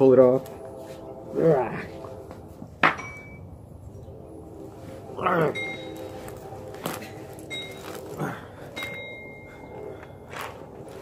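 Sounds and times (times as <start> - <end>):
denim rustling: 4.6 - 11.0.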